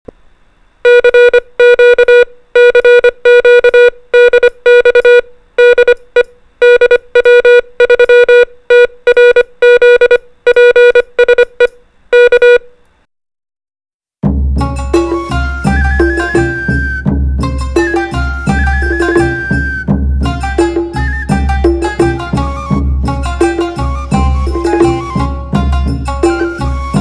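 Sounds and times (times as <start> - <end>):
morse code beeps: 0.9 - 12.7.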